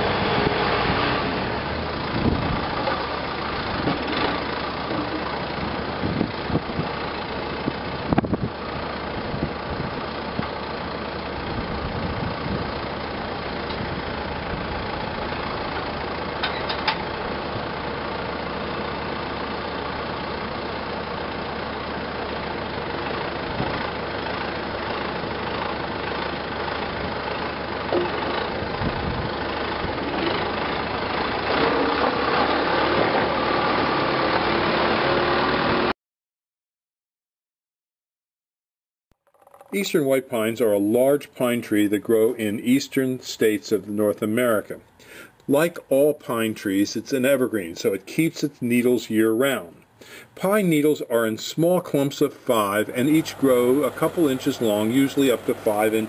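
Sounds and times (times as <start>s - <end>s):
machinery engine idling: 0.0s - 35.8s, 39.5s - 56.0s.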